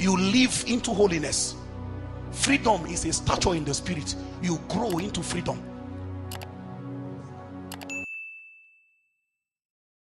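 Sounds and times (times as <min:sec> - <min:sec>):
notification bell ding: 0:07.8 - 0:09.3.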